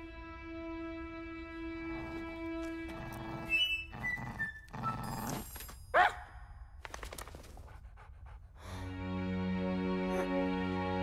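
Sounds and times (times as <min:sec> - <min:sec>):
small creature panting: 0:07.4 - 0:09.0.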